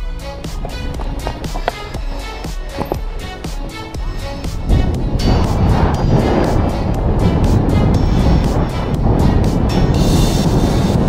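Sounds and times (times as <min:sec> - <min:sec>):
background music with quick beat: 0:00.0 - 0:11.0.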